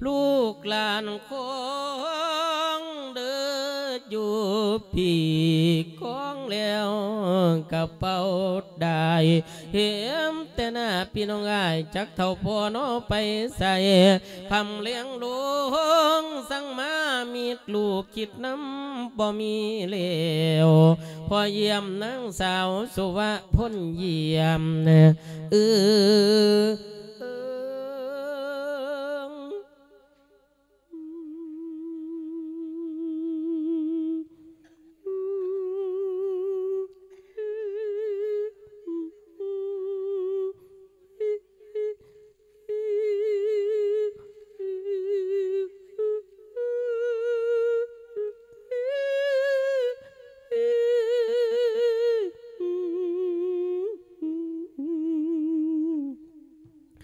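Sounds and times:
monk chanting a sermon: 0:03.6 - 0:27.2.

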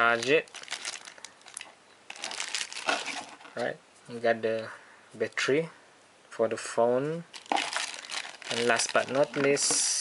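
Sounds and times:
plastic bag crinkling: 0:00.0 - 0:03.6, 0:07.3 - 0:09.8.

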